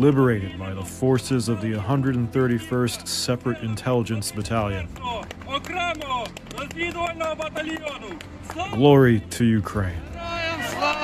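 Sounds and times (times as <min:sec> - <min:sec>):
man speaking: 0:00.0 - 0:06.0.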